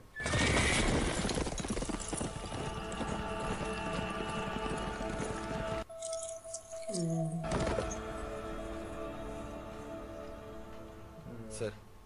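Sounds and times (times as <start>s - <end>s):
horse neighing: 0.2s - 1.2s
hooves clopping: 0.2s - 8.4s.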